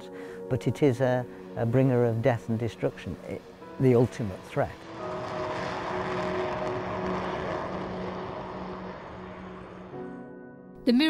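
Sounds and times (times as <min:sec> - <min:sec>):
jet noise in cockpit: 0:01.2 - 0:10.4.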